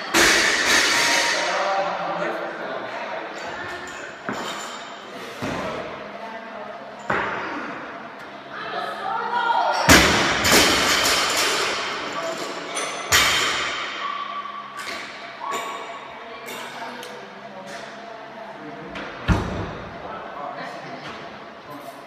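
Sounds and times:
barbells slamming on rubber floor: 9.9 - 11.5.

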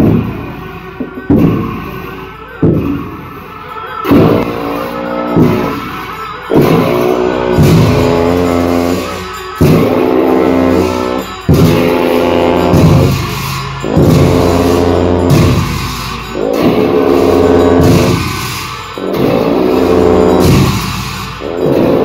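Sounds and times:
long horns droning low notes: 0.0 - 22.0
sharp percussion strikes: 0.0 - 22.0.

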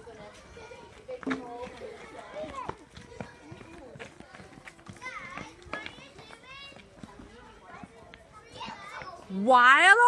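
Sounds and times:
children chattering and calling out: 0.0 - 10.0
footsteps on tarmac: 0.2 - 9.3.

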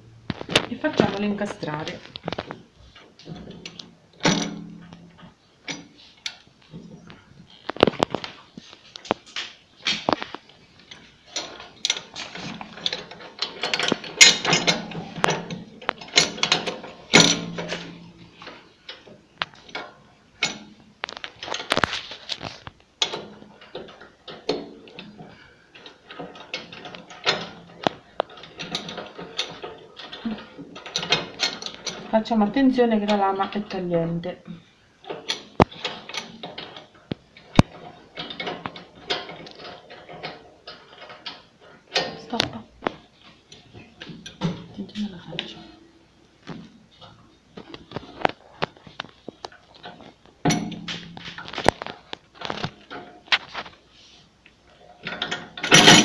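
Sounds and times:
metallic clicks and knocks: 0.3 - 34.4, 35.0 - 45.8, 46.4 - 56.0.

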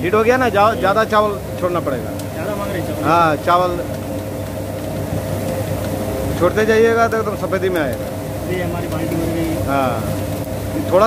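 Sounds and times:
roasting machine humming: 0.0 - 11.0.

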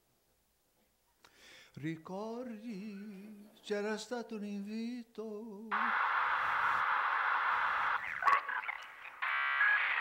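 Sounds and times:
static hiss: 5.7 - 10.0.

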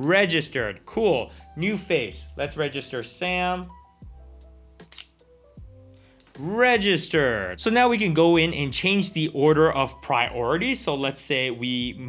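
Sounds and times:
soft background music: 0.0 - 12.0
camera shutter clicks: 4.8 - 5.2.

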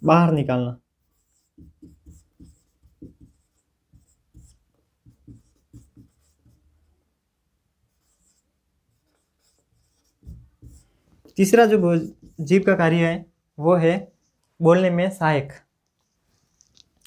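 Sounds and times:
marker writing on whiteboard: 1.0 - 6.9, 7.8 - 13.0.

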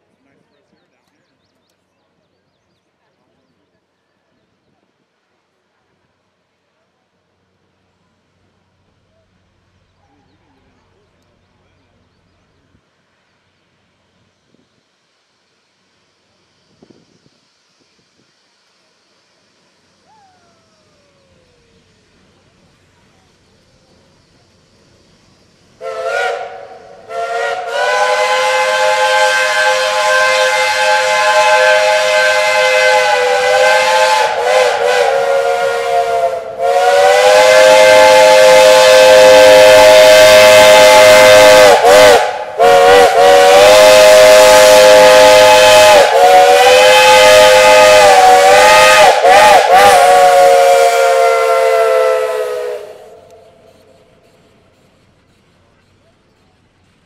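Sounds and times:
steam locomotive whistles: 17.8 - 57.0.

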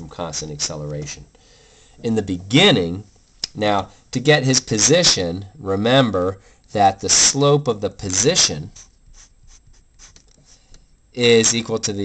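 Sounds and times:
marker writing on paper: 8.7 - 10.6.

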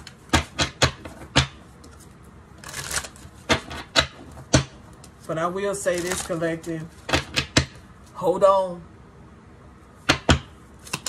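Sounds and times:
cards rustling: 1.8 - 3.6, 4.9 - 7.2.

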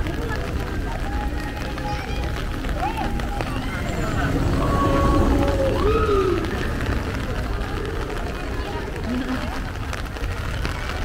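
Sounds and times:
crowd chatter: 0.0 - 11.0
steady low rumble: 0.0 - 11.0.

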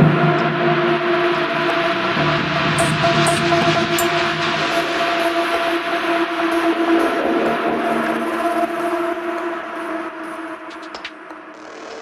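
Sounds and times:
dark electronic drone music: 0.0 - 12.0.

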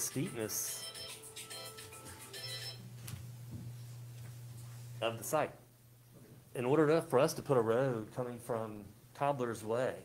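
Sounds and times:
low electrical hum: 0.0 - 10.0
electronic tune of high notes: 0.6 - 2.8.

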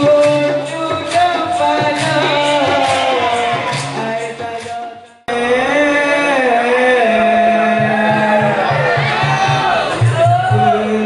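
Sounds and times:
man singing into microphone: 0.0 - 9.1, 9.9 - 11.0.

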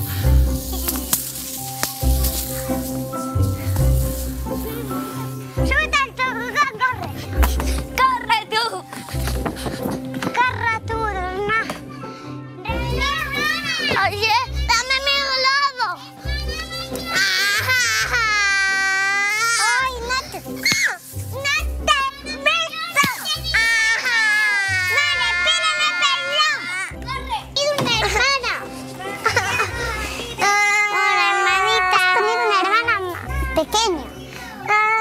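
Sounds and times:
background music: 0.0 - 35.0
children calling and squealing: 0.0 - 35.0.

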